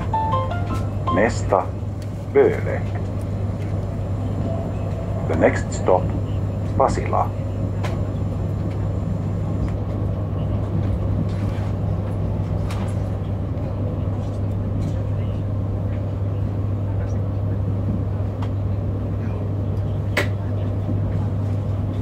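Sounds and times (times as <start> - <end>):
electric train hum and rumble: 0.0 - 22.0.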